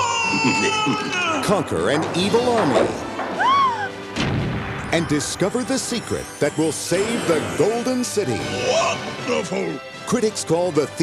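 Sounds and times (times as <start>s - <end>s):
boom: 4.2s - 4.9s.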